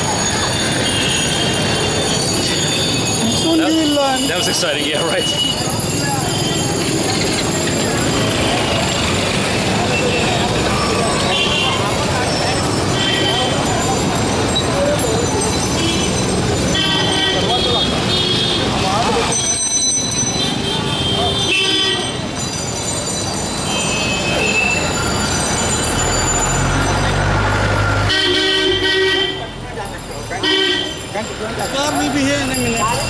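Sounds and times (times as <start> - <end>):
crowd chatter: 0.0 - 33.0
vehicle horns honking: 11.2 - 12.0, 12.9 - 13.7, 15.7 - 18.9, 20.3 - 22.3, 27.9 - 29.6, 30.4 - 31.1.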